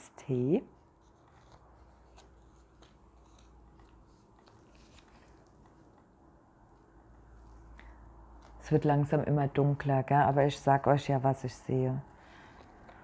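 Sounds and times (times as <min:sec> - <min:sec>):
paper clicks and crinkles: 0:00.8 - 0:06.2, 0:12.3 - 0:13.0.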